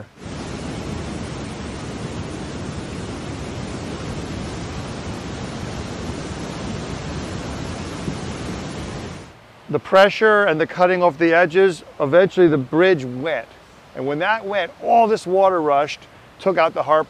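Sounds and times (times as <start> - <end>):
brook water rushing: 0.0 - 17.0.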